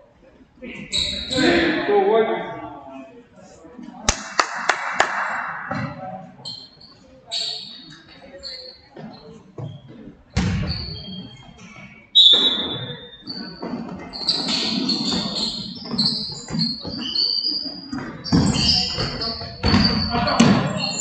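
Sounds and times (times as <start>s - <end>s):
voices echoing: 0.0s - 21.0s
sneakers squeaking on hardwood: 0.8s - 1.7s, 5.6s - 21.0s
basketball bouncing: 10.4s - 11.0s, 18.0s - 20.7s.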